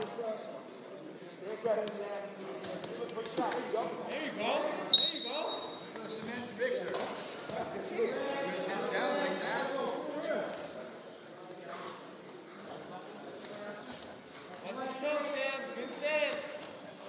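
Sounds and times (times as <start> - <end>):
voices shouting in a gym: 4.1 - 6.2
referee whistle blast: 4.9 - 5.9.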